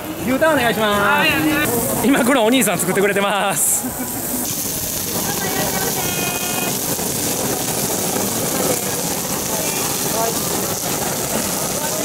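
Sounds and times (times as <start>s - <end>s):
gas torch jet rushing: 0.0s - 12.0s.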